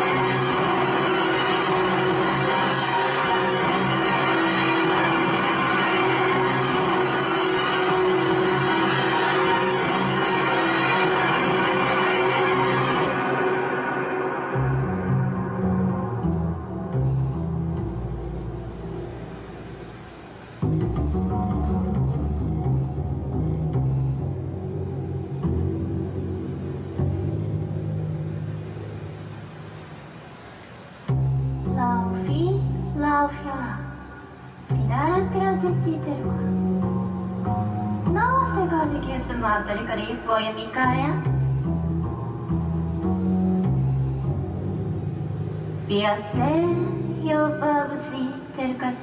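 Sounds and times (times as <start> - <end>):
low guitar synthesizer bass notes: 0.0 - 29.7, 34.5 - 40.1, 40.9 - 47.2
woman singing: 45.9 - 49.0.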